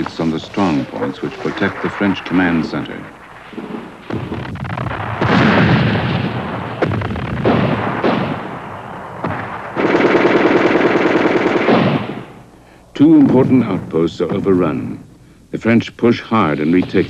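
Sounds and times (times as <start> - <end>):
gunshots: 0.0 - 12.4
machine-gun fire: 1.4 - 12.4
gun blast with rumbling decay: 1.4 - 12.5.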